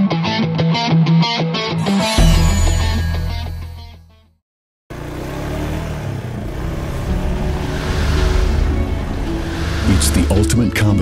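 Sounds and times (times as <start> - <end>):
music: 0.0 - 4.4, 7.2 - 11.0
off-road vehicle engines driving: 4.9 - 11.0.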